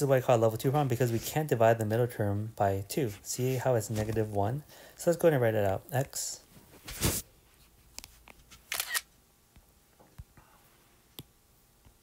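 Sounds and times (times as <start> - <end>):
camera shutter double click: 8.7 - 9.1.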